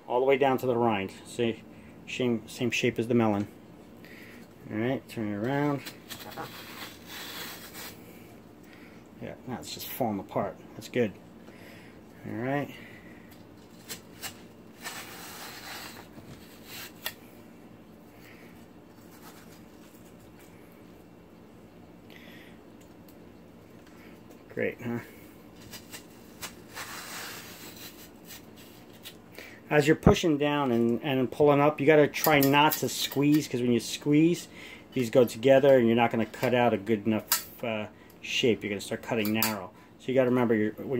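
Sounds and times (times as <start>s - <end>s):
melon slicer scraping watermelon: 5.6s - 8.2s, 13.7s - 17.2s, 25.6s - 29.0s.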